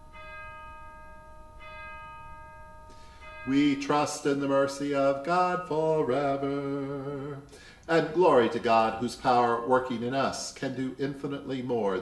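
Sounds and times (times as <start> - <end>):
bell ringing: 0.0 - 6.5.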